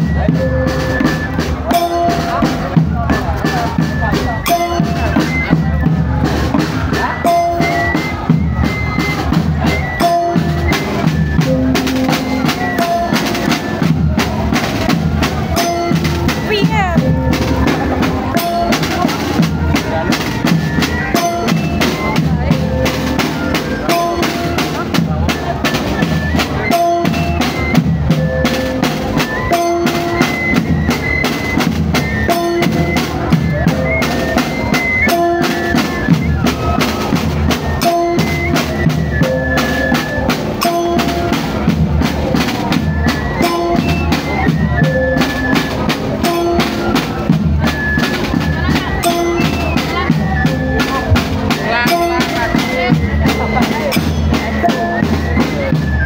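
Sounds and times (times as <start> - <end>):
small flutes melody: 0.0 - 56.0
snare and bass drums: 0.0 - 56.0.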